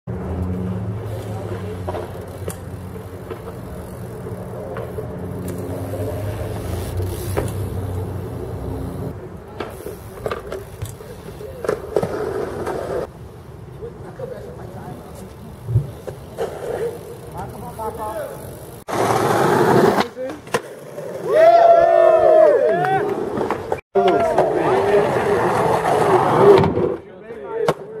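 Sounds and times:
vehicle engine humming: 0:00.1 - 0:18.9
outdoor noise: 0:00.1 - 0:28.0.

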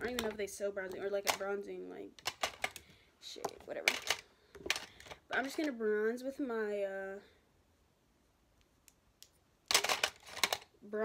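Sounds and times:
makeup brushes rustling clatter: 0:00.0 - 0:05.8, 0:09.7 - 0:10.7
makeup brushes clicking: 0:02.2 - 0:02.8.

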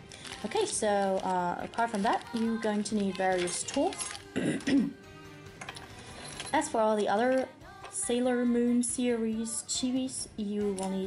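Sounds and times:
soft background music: 0:00.0 - 0:11.0
person coughing: 0:04.3 - 0:05.0.

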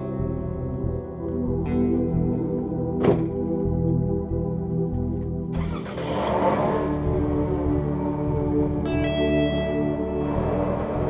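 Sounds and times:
background music: 0:00.0 - 0:11.0
car engine starting and running: 0:00.4 - 0:11.0.

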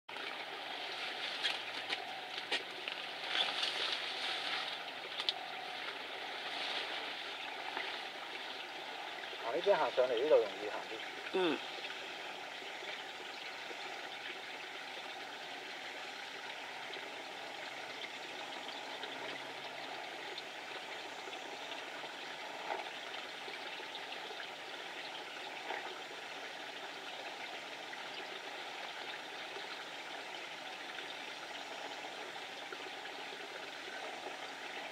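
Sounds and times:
rushing water noise: 0:00.1 - 0:34.9
faint ticks: 0:01.3 - 0:09.1.

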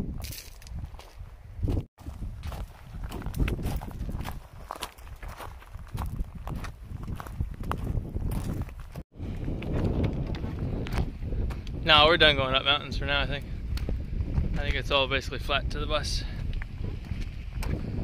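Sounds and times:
footsteps on gravel: 0:00.1 - 0:11.8, 0:16.2 - 0:18.0.

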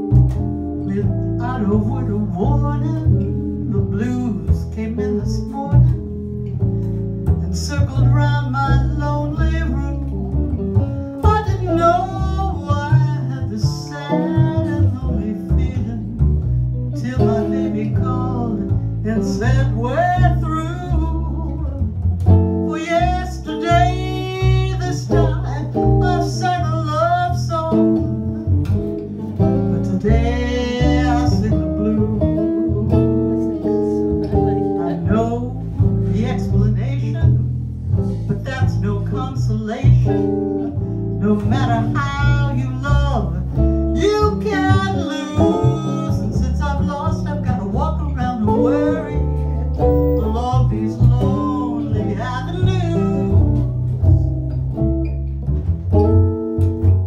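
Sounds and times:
plucked upright bass: 0:00.0 - 0:57.0
electric guitar: 0:10.0 - 0:57.0.

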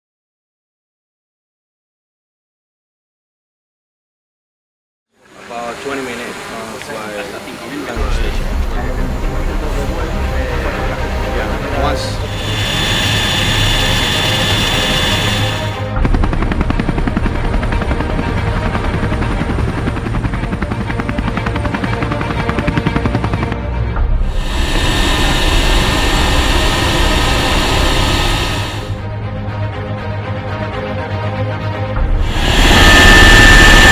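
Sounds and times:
turbine and wind rush: 0:05.7 - 0:29.2, 0:32.0 - 0:33.9
helicopter rotor chop: 0:07.0 - 0:29.1, 0:32.0 - 0:33.9.

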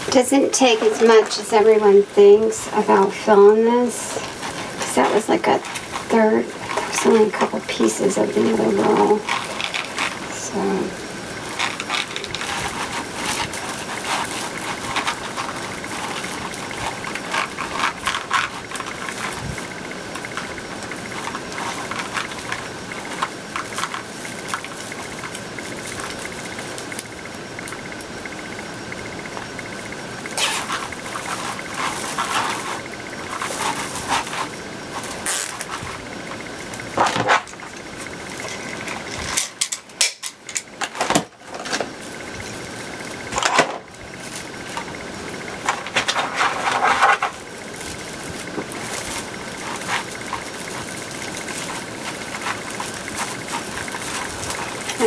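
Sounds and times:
faint steady hum: 0:00.0 - 0:55.0
plastic mesh rustling and crinkling: 0:00.0 - 0:55.0.

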